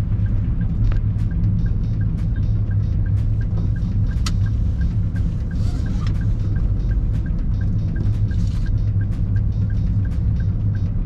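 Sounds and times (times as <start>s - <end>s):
car cabin rumble: 0.0s - 11.0s
faint even ticking: 0.0s - 11.0s.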